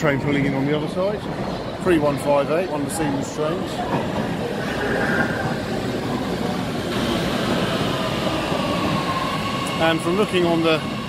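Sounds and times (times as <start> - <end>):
train wheels rumbling: 0.8 - 11.0.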